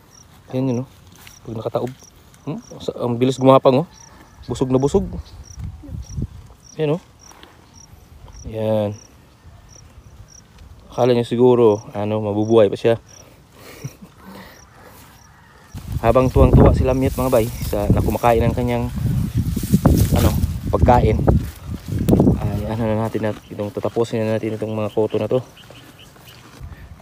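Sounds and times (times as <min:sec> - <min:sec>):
insects chirping: 0:00.0 - 0:20.0, 0:20.6 - 0:26.7.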